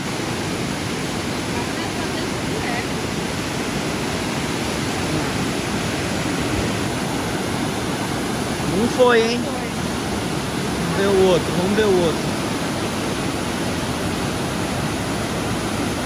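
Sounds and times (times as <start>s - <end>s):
river rapids rushing: 0.0s - 16.0s.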